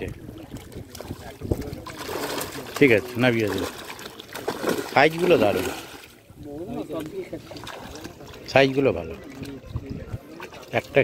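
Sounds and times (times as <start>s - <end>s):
fish splashing in water: 0.0s - 6.4s, 7.0s - 11.0s
indistinct voices talking quietly: 0.0s - 11.0s.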